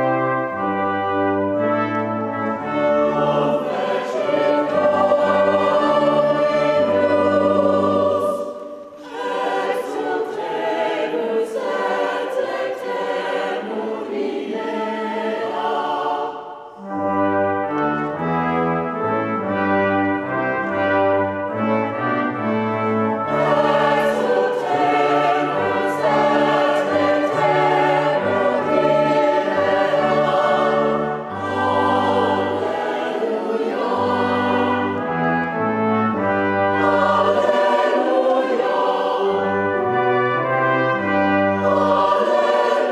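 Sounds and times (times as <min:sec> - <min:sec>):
choir singing with instruments: 0:00.0 - 0:42.9.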